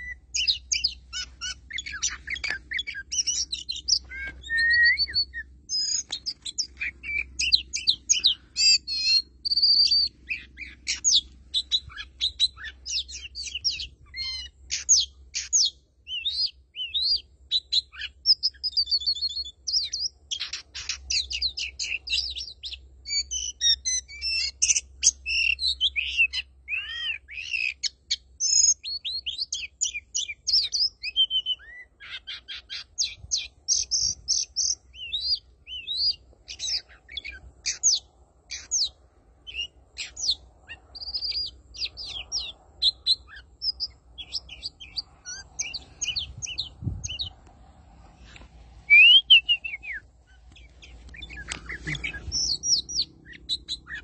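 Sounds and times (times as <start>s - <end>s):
bird singing: 0.0s - 47.4s, 48.2s - 54.0s.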